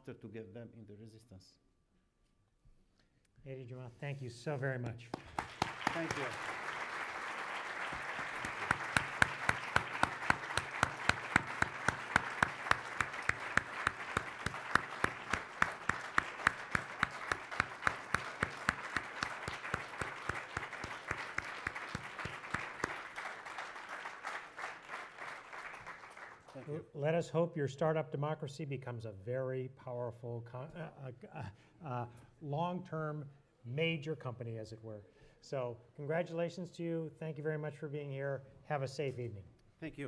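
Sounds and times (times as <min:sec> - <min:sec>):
close hands clapping: 0:04.8 - 0:26.8
audience applauding: 0:05.1 - 0:26.8.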